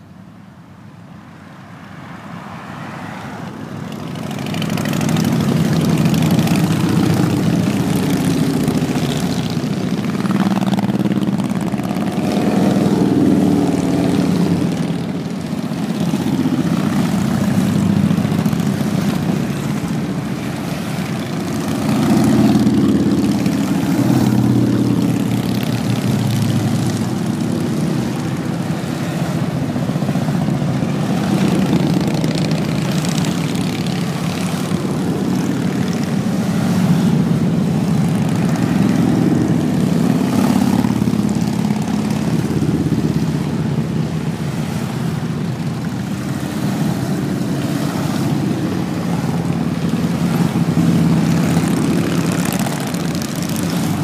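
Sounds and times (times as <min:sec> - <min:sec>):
motorcycles riding past: 0:01.6 - 0:54.0.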